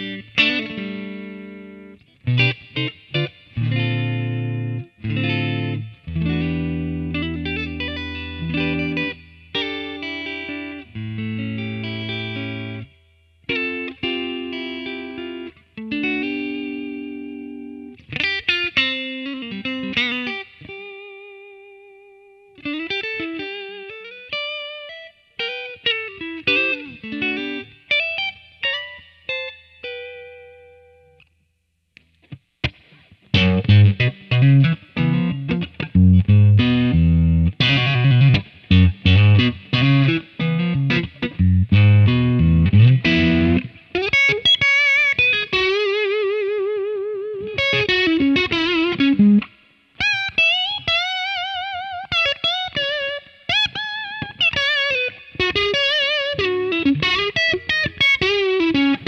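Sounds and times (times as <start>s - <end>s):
electric guitar through amp: 0.0s - 31.2s, 32.0s - 59.0s.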